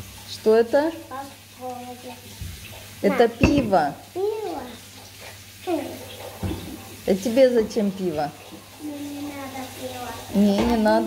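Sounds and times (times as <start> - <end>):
child's voice: 1.1 - 2.4, 3.0 - 4.9, 5.6 - 6.1, 8.8 - 10.7.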